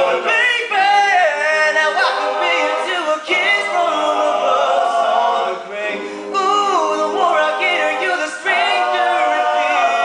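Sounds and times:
men singing held harmonies: 0.0 - 10.0.

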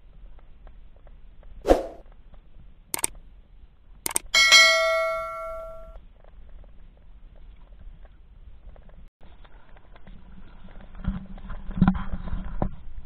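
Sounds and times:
short clicks: 3.0 - 3.2, 4.0 - 4.3
bright bell-like ding: 4.4 - 6.0.

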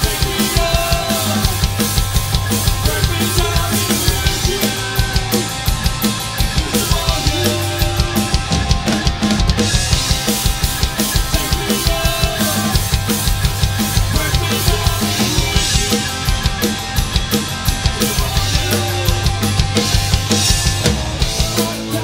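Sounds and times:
drum kit beat: 0.0 - 22.0
rock band playing: 0.0 - 22.0.

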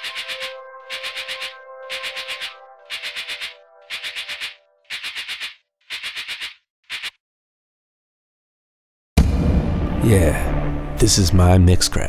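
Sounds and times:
rattling percussion shakes: 0.0 - 7.1.

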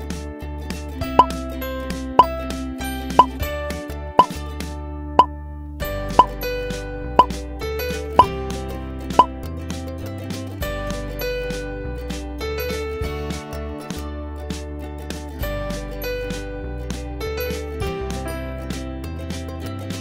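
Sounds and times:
light instrumental music: 0.0 - 20.0
rising pop sound effect: 3.2 - 3.4.

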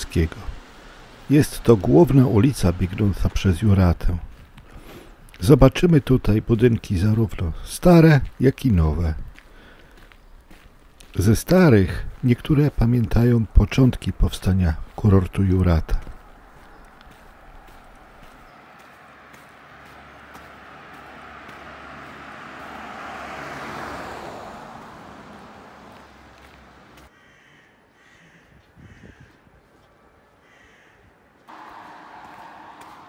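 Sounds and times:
car driving past: 0.0 - 5.2, 16.4 - 27.1, 31.5 - 33.0
outdoor background noise: 0.0 - 33.0
footsteps on pavement: 1.8 - 27.1, 31.4 - 33.0.

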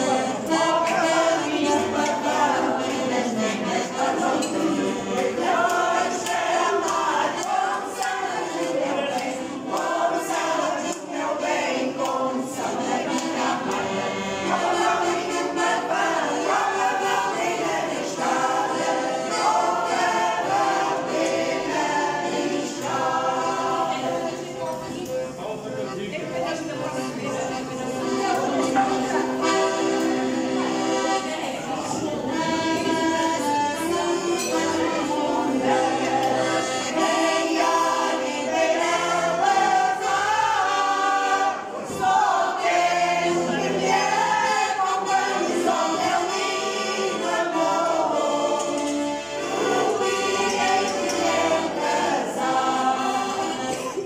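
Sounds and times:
choir singing: 0.0 - 25.4, 26.5 - 54.0
piano accordion: 0.0 - 54.0.

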